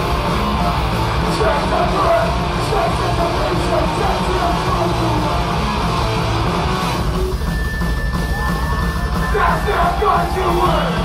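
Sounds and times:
punk band playing: 0:00.0 - 0:11.0.

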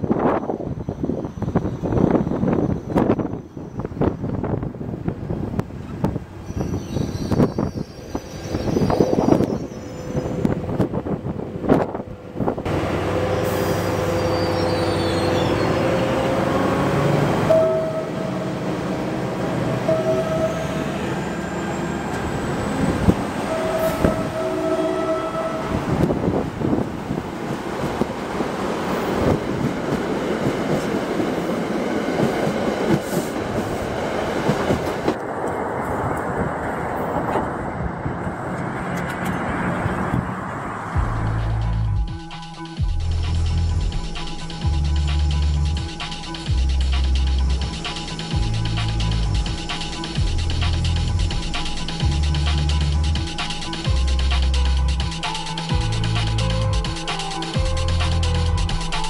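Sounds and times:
train rumbling past: 0:00.0 - 0:59.0
train horn blasts: 0:12.7 - 0:21.5, 0:23.4 - 0:26.1.

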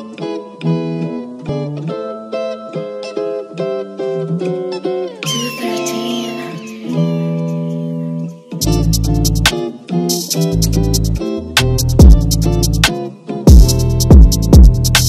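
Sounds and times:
plucked guitar-like melody: 0:00.0 - 0:14.9
synth swell with gliding tones: 0:05.2 - 0:08.6
drums with deep bass and hi-hats: 0:08.6 - 0:15.0.

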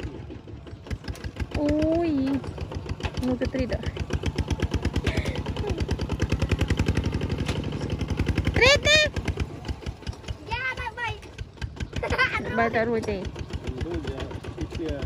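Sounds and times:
diesel engine chugging under load: 0:00.0 - 0:15.0.

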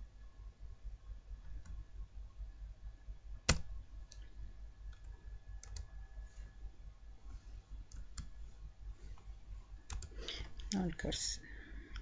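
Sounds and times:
low steady hum: 0:00.0 - 0:12.0
computer mouse clicks: 0:07.9 - 0:08.4, 0:09.9 - 0:10.7.

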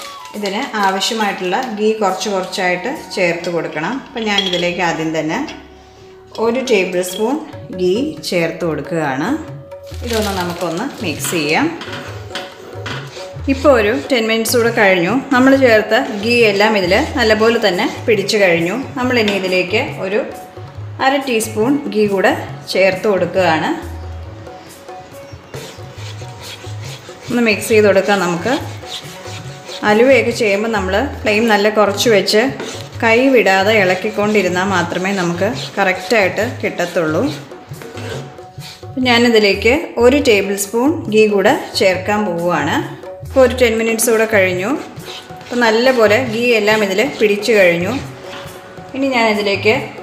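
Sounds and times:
background music: 0:00.0 - 0:50.0
spatula stirring in a pan: 0:11.1 - 0:18.4, 0:24.4 - 0:39.0, 0:43.7 - 0:48.9.

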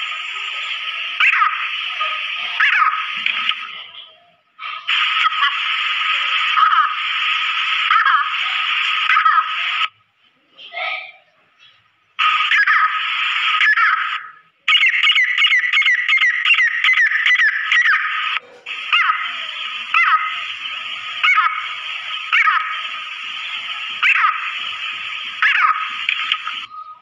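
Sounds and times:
steady hiss: 0:00.0 - 0:09.9, 0:18.2 - 0:26.7.

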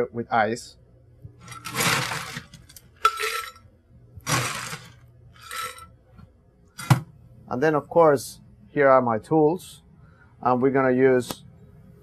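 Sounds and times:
ice cubes rattling into pitcher: 0:01.4 - 0:03.6, 0:04.2 - 0:05.8.

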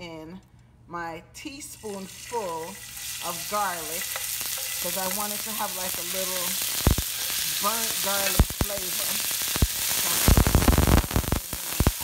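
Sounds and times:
garlic sizzling in oil: 0:01.8 - 0:12.0
metal spoon scraping a pot: 0:04.0 - 0:05.0.

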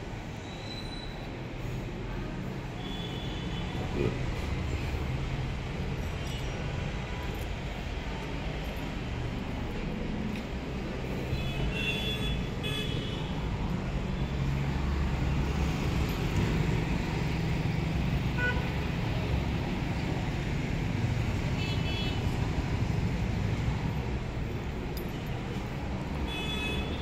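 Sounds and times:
road traffic rumble: 0:00.0 - 0:27.0
vehicle horns tooting: 0:18.4 - 0:18.8.

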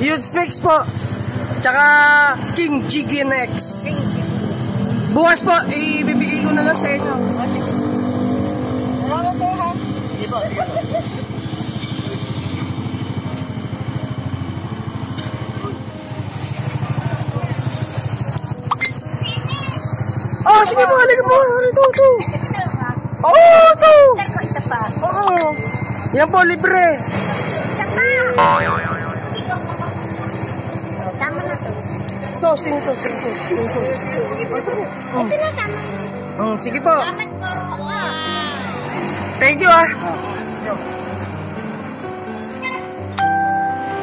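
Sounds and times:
cartoon boing: 0:28.3 - 0:29.6.

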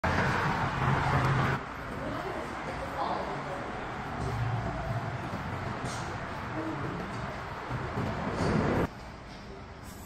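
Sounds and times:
highway traffic noise: 0:00.0 - 0:09.8.

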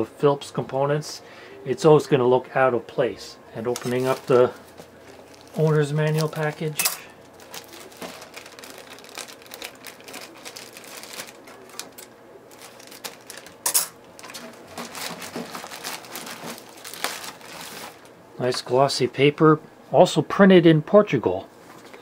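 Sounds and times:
plastic bag crinkling: 0:03.7 - 0:18.1
scissors cutting plastic: 0:07.4 - 0:18.0.

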